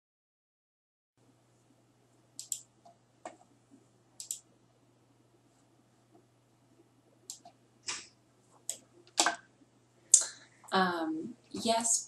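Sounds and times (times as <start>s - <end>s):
faint low hum: 1.2s - 12.0s
computer mouse button clicks: 2.4s - 2.6s.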